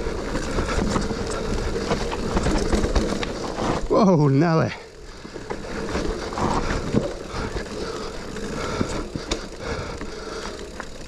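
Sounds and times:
bike knocking over bumps: 0:00.0 - 0:03.9, 0:05.2 - 0:11.0
bike rattling: 0:00.0 - 0:11.0
bike tyres rumbling on dirt: 0:00.0 - 0:11.0.

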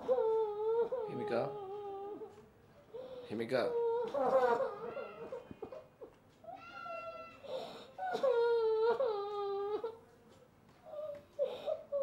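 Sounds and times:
woman crying in high sobs: 0:06.6 - 0:10.0.

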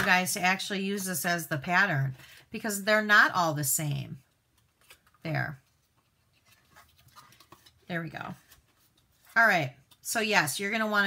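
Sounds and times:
rustling of cardstock and plastic: 0:04.5 - 0:10.1
person speaking: 0:07.8 - 0:08.6, 0:09.3 - 0:11.0.

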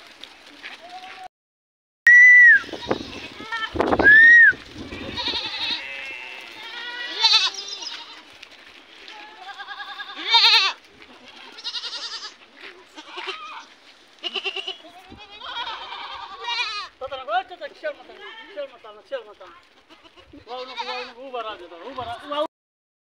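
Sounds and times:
goats bleating: 0:02.6 - 0:03.8, 0:04.6 - 0:22.5.

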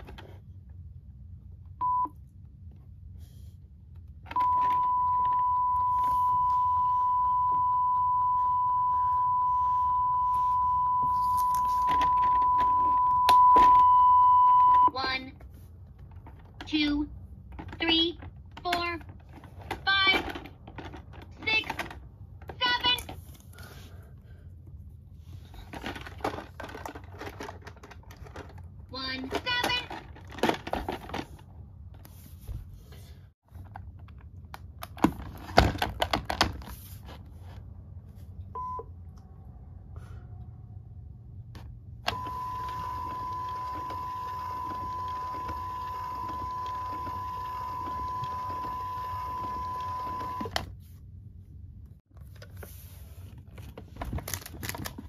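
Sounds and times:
faint mechanical whir: 0:00.0 - 0:55.0.

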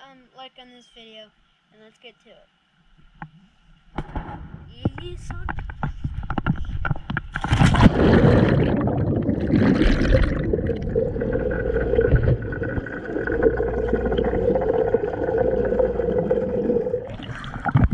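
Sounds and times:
muffled underwater rushing: 0:05.8 - 0:17.9
rush of bubbles: 0:07.3 - 0:17.9
splash into pool: 0:07.4 - 0:11.0.

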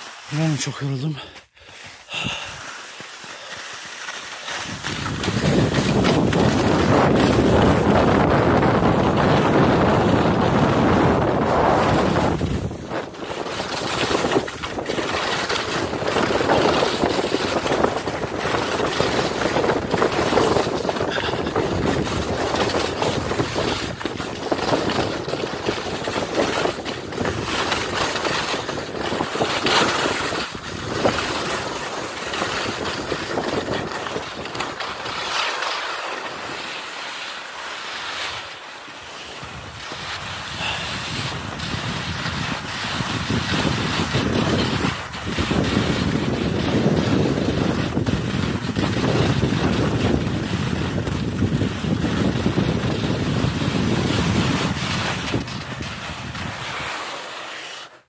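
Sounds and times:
wind buffeting microphone: 0:04.6 - 0:35.2, 0:39.4 - 0:56.9.

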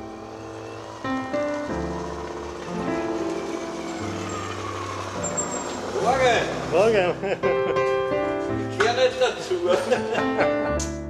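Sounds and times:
moped engine running: 0:00.0 - 0:08.3
keyboard background music: 0:00.0 - 0:11.0.

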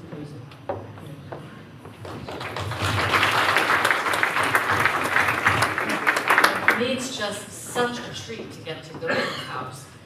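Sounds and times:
audience applause: 0:02.0 - 0:07.1.

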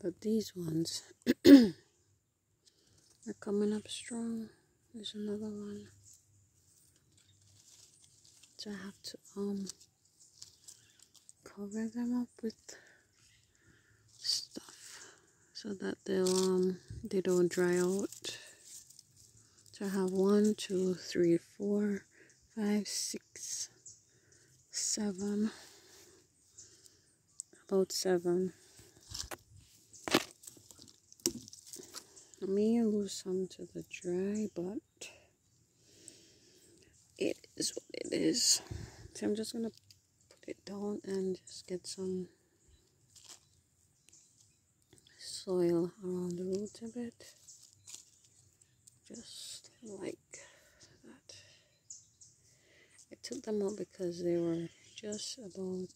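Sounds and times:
hand rustling dry leaves: 0:05.8 - 0:13.5, 0:16.1 - 0:21.6, 0:27.9 - 0:33.2, 0:43.1 - 0:44.5, 0:45.2 - 0:49.1.

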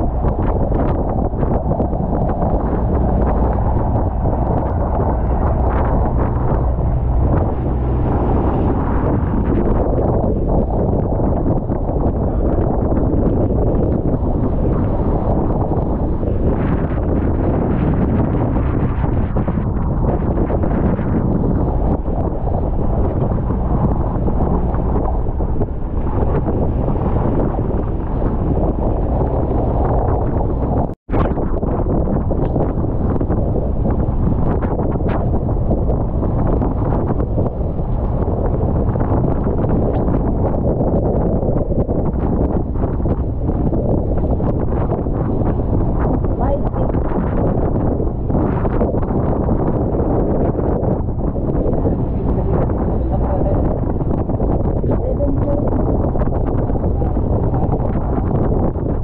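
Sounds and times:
rough sea rushing: 0:00.0 - 0:59.0
storm wind buffeting microphone: 0:00.0 - 0:59.0.

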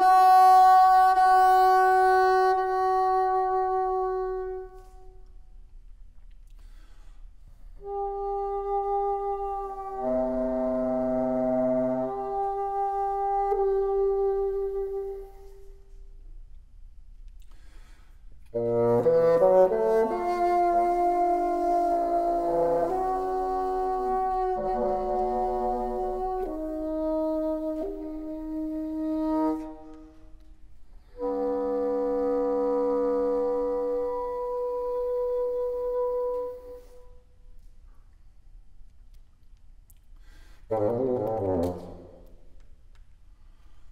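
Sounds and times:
solo bassoon multiphonics: 0:00.0 - 0:05.6, 0:07.7 - 0:16.2, 0:18.4 - 0:37.4, 0:40.7 - 0:42.4.

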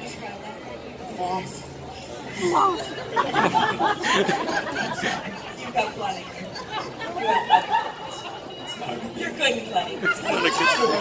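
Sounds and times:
crowd voices: 0:00.0 - 0:11.0
people talking over a microphone: 0:00.0 - 0:11.0.

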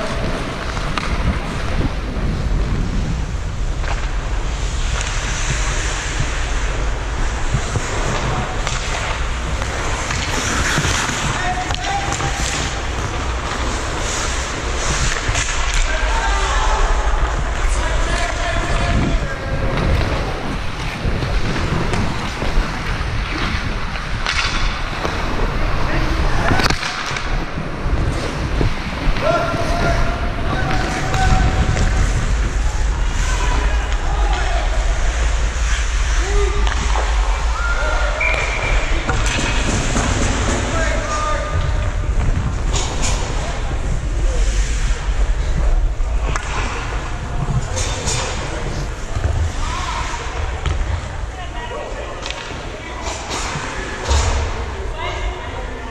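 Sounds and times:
wind on microphone: 0:00.0 - 0:11.3, 0:27.2 - 0:49.6
skate blades carving ice: 0:03.7 - 0:51.0.

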